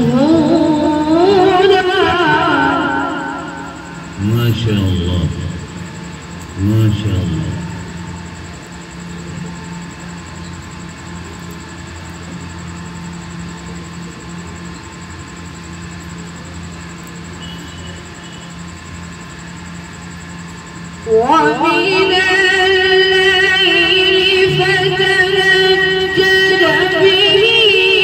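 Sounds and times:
person reciting: 0:00.0 - 0:03.6, 0:04.2 - 0:05.6, 0:06.6 - 0:07.8, 0:21.1 - 0:28.0
sound system hum: 0:00.0 - 0:28.0.

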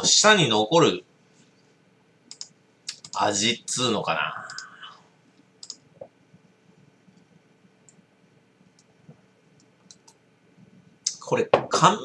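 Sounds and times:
man's wordless voice: 0:03.2 - 0:05.0, 0:11.1 - 0:12.0.

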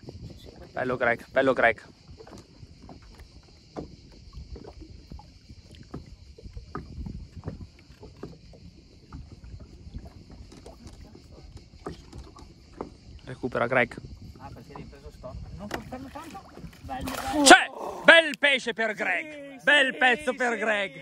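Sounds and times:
water lapping against boat: 0:00.0 - 0:21.0.

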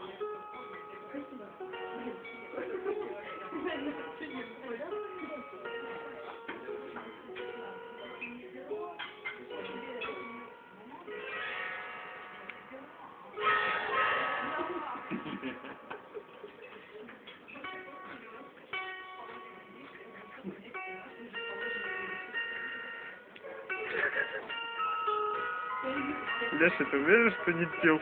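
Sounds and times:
wooden zither strummed and plucked: 0:00.0 - 0:28.0.

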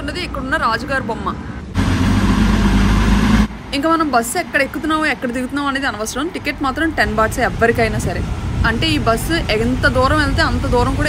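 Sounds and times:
bus engine drone: 0:00.0 - 0:05.1.

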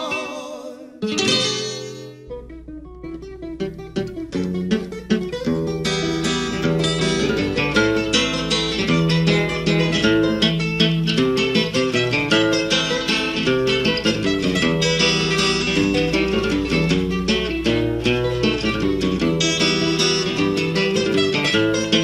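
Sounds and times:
acoustic guitar picking: 0:00.0 - 0:22.0.

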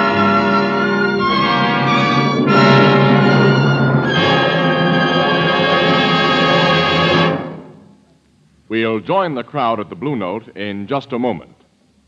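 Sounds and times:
dramatic held music chords: 0:00.0 - 0:08.0.

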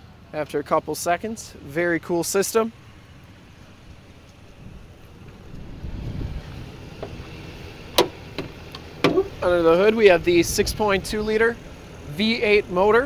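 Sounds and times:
wind rumble: 0:02.9 - 0:11.8.

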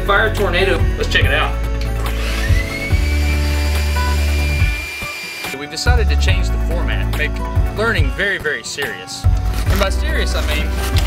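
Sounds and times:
background music: 0:00.0 - 0:11.0
small electric motor whining: 0:02.1 - 0:05.6.

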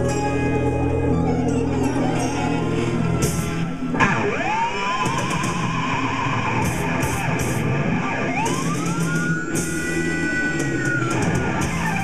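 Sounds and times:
electric guitar through amplifier: 0:00.0 - 0:12.0.

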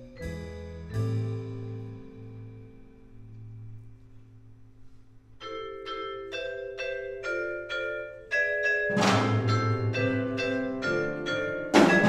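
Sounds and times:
vibraphone chords ringing: 0:00.0 - 0:03.7, 0:05.4 - 0:12.0.

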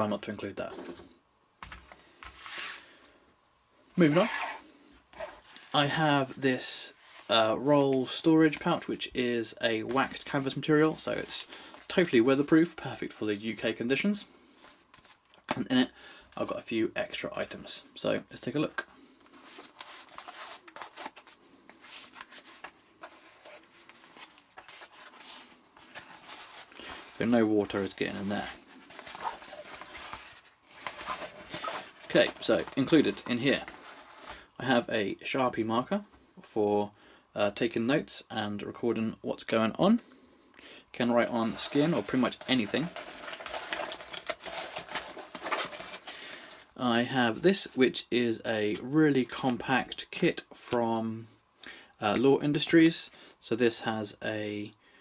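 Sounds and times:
canvas pouch rustling: 0:19.4 - 0:33.0, 0:41.5 - 0:46.6.

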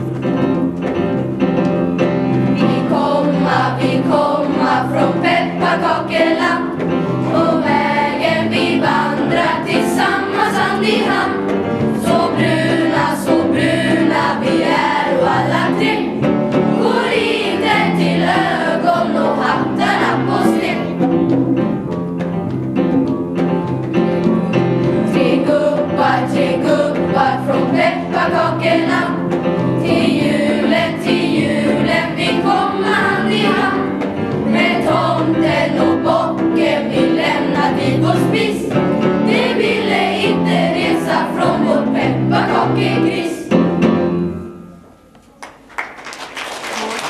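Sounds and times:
children's choir singing: 0:02.4 - 0:22.0, 0:24.2 - 0:43.8.

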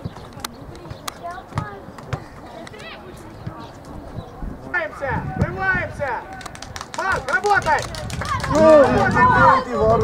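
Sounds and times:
players and coaches shouting: 0:04.7 - 0:10.0.

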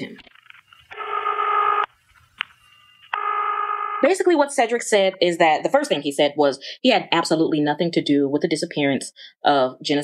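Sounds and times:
telephone ring tone: 0:00.5 - 0:04.2.

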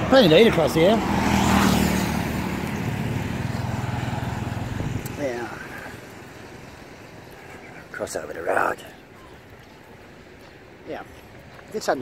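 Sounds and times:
vehicle engine passing: 0:00.0 - 0:07.6.

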